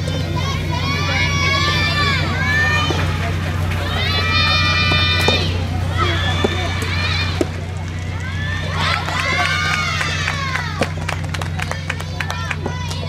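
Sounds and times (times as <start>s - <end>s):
high-pitched voices shouting: 0.0s - 13.0s
steady low hum: 0.0s - 13.0s
racket striking rubber ball: 4.8s - 5.6s.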